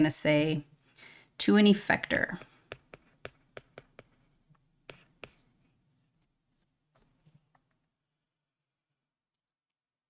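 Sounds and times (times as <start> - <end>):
stylus tapping on tablet screen: 2.1 - 5.5.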